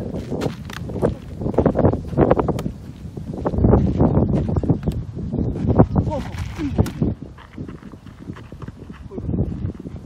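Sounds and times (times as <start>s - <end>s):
footsteps on dirt ground: 0.0s - 10.0s.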